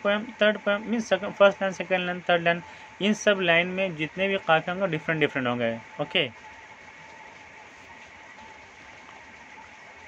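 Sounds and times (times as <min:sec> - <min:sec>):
room noise hiss: 0:00.0 - 0:10.0
thin steady tone: 0:00.0 - 0:10.0.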